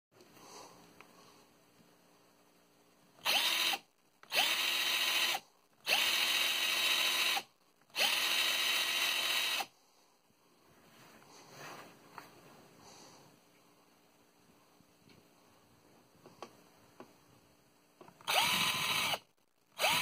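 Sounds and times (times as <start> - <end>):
cordless drill motor whining: 3.2 - 9.7, 18.2 - 20.0.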